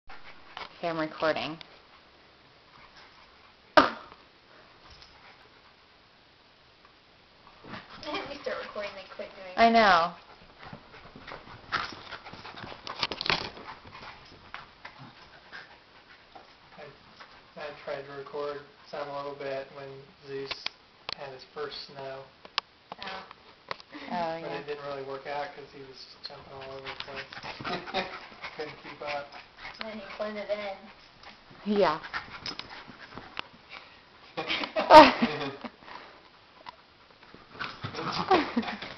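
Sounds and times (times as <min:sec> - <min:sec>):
faint dog sounds: 0:24.0 - 0:33.0.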